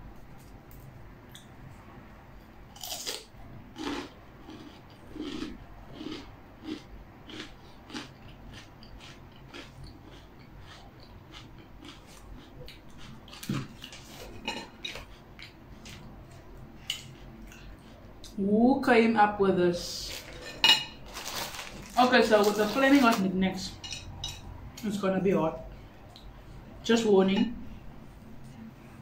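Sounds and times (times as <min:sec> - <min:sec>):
crunchy biting and chewing: 0:02.7 - 0:14.4.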